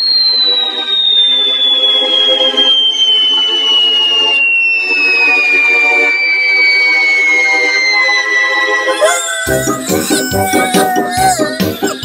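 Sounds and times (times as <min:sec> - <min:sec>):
cartoon whistle sliding downward: 0:00.0 - 0:12.0
background music: 0:08.5 - 0:12.0.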